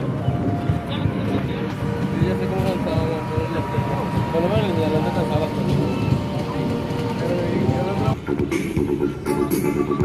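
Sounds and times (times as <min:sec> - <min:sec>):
steady low rumble: 0:00.0 - 0:09.1
people talking indistinctly: 0:00.4 - 0:10.0.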